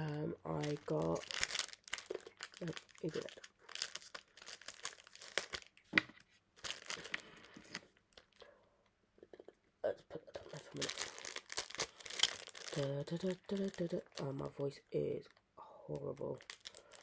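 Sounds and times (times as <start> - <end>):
plastic packaging crinkling and tearing: 0.0 - 5.9, 6.6 - 8.4, 10.3 - 17.0.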